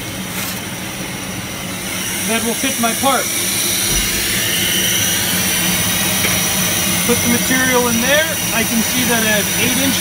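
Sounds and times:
extraction fan and pump drone: 0.0 - 10.0.

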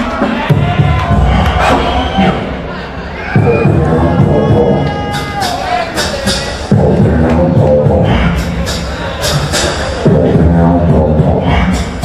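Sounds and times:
beatboxing through speakers: 0.0 - 2.7, 3.3 - 12.0
crowd cheering: 0.0 - 7.5.

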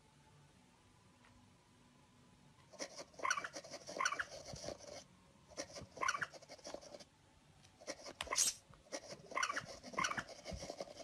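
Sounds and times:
tablet game squeaks: 3.2 - 4.3, 6.0 - 6.4, 8.2 - 10.3.

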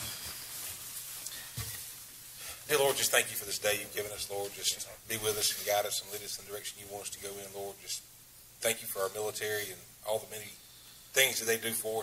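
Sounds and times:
people rustling and shuffling: 0.0 - 6.4.

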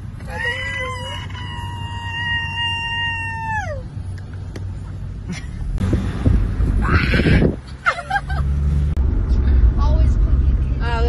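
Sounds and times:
car rumbling: 0.0 - 11.0
person squealing high-pitched: 0.3 - 3.8, 6.8 - 7.5.

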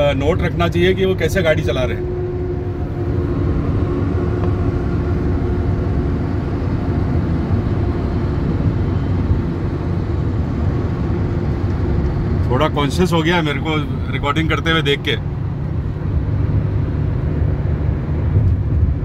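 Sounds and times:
car tyre and engine rumble: 0.0 - 19.0.

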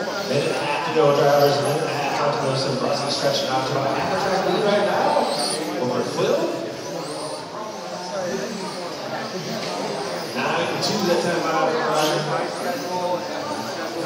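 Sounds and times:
rc car motors whining: 0.0 - 14.0.

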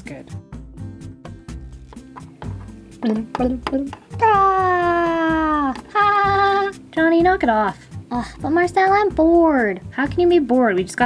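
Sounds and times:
person saying knock it off: 3.0 - 4.0
person whining: 4.1 - 6.8.

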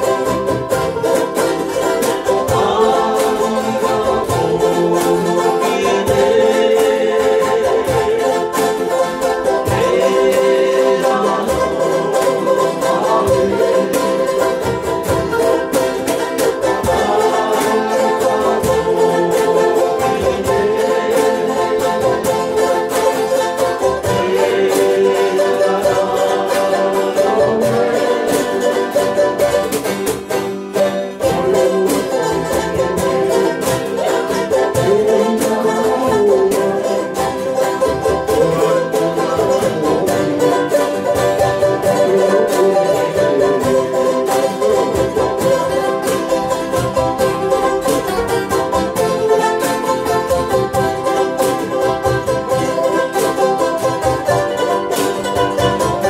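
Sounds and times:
acoustic string band strumming: 0.0 - 56.0.

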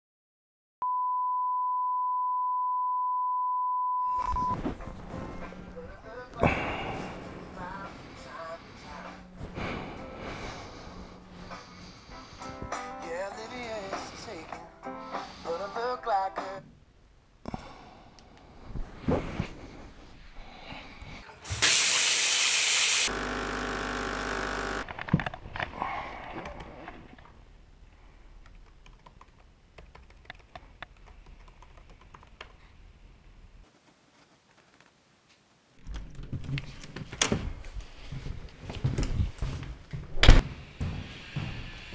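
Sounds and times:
steady electronic beep: 0.8 - 4.6
loud hiss: 21.5 - 23.2
coffee machine pump humming: 23.0 - 24.8.

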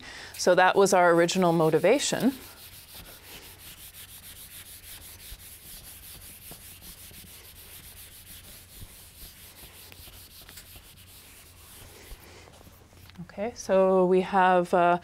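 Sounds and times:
eraser scrubbing whiteboard: 0.4 - 12.8.

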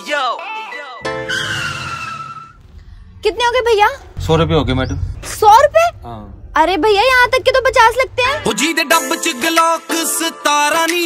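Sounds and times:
tyres screeching: 1.0 - 8.5
low engine rumble: 2.5 - 8.8.

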